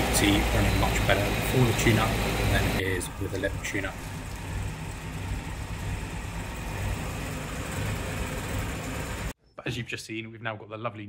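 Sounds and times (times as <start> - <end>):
petrol engine idling: 0.0 - 9.4.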